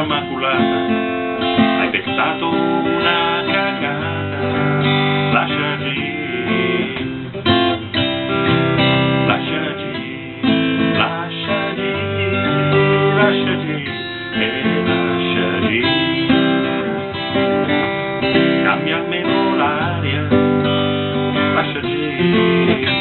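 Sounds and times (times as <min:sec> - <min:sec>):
man singing: 0:00.0 - 0:07.9, 0:09.1 - 0:23.0
acoustic guitar strumming: 0:00.0 - 0:23.0.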